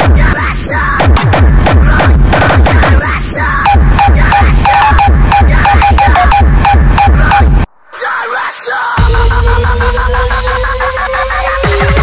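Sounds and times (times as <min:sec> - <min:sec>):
hardstyle dance music: 0:00.0 - 0:12.0.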